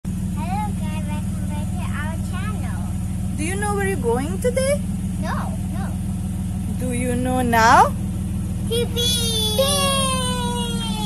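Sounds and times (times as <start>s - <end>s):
engine idling: 0.0s - 11.0s
voices: 0.3s - 11.0s.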